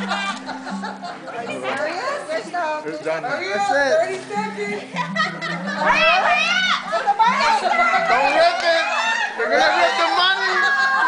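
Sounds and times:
excited voices calling out: 5.1 - 11.0.

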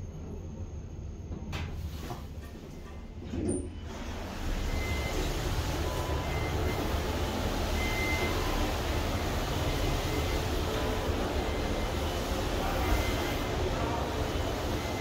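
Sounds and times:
metro station rumble: 0.0 - 15.0
elevator doors sliding open: 1.6 - 15.0.

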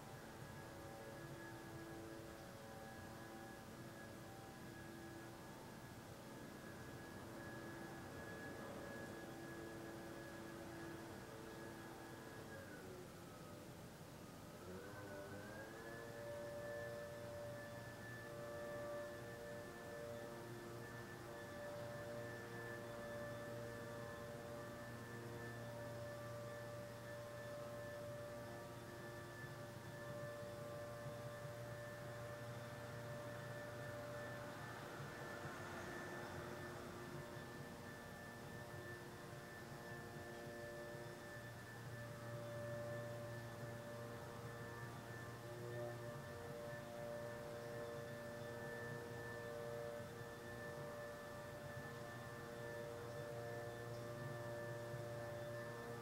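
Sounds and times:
chord of sustained tones: 0.0 - 56.0
low hum: 0.0 - 56.0.

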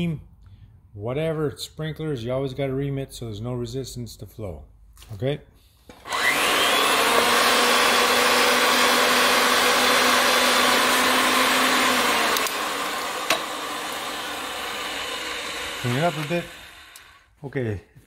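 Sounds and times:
pipe threading machine whine: 5.9 - 17.3.

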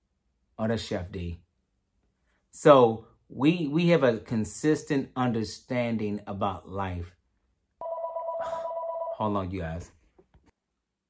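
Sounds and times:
phone ringing two-tone: 7.8 - 9.3.

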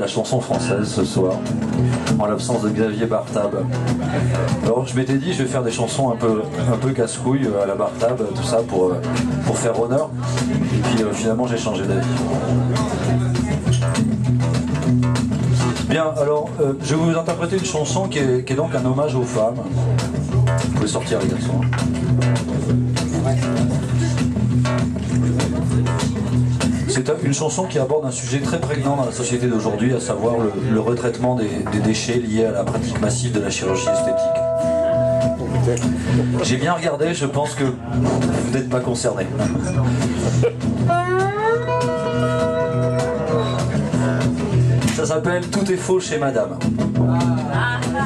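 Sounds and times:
acoustic guitars strumming: 33.5 - 36.4, 39.3 - 44.9
repeating low bass pattern: 33.8 - 36.0.

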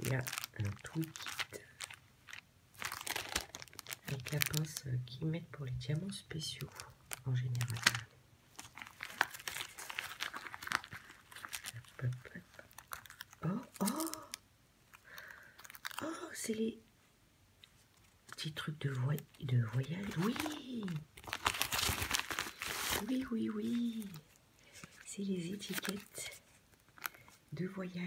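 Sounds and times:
gift wrapping crinkling: 0.0 - 16.7, 17.7 - 27.8.

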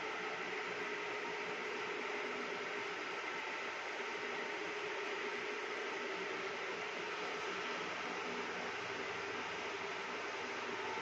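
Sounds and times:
faint hum: 0.0 - 11.0
steady hissing noise: 0.0 - 11.0.

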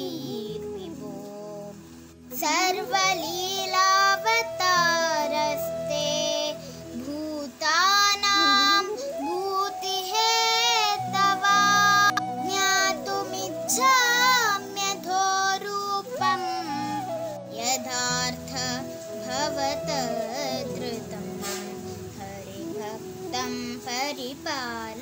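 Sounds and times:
child singing: 0.0 - 25.0
sustained accompanying notes: 2.4 - 24.5.

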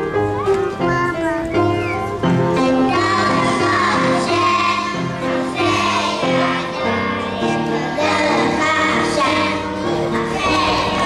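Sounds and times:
children's choir singing: 0.0 - 11.0
instrumental accompaniment: 0.0 - 11.0.

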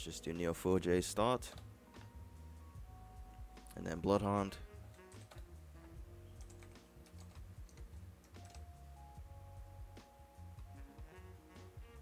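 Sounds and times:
faint background music: 0.0 - 12.0
computer keyboard typing: 4.9 - 5.6, 6.4 - 8.7.

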